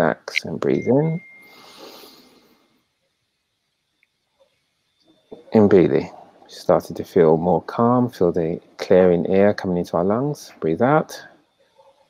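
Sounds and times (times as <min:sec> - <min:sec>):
faint breath through nose: 0:01.4 - 0:02.8.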